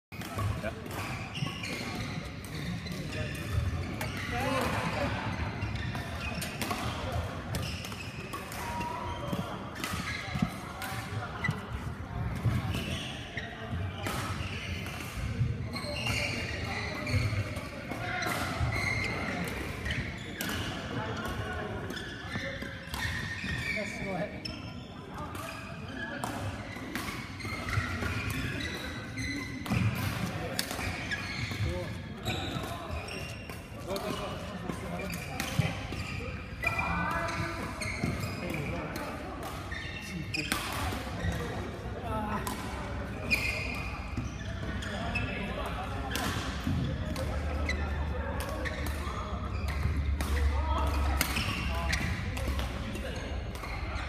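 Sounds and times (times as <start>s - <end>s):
racket hitting shuttlecock: 29.6s - 39.8s, 40.4s - 41.5s, 46.0s - 52.8s.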